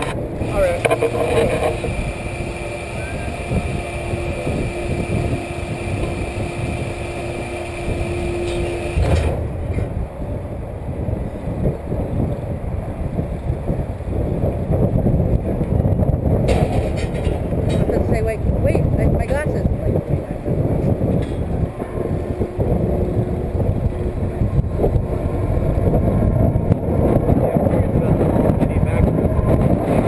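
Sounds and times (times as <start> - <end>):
low rumble: 0.0 - 30.0
ride machinery hum: 0.0 - 30.0.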